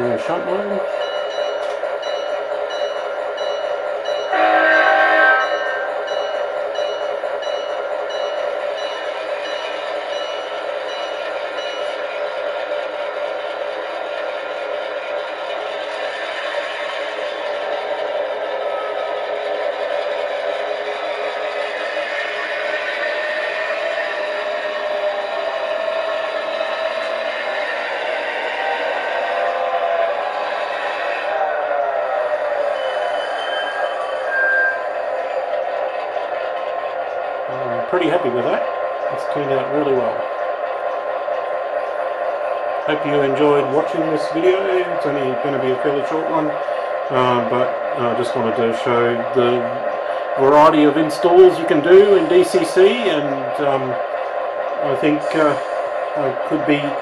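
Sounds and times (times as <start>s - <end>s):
locomotive bell ringing: 0.0s - 12.9s, 32.7s - 35.0s, 42.8s - 55.6s
diesel locomotive engine running: 0.0s - 57.0s
short horn blast: 4.3s - 6.0s.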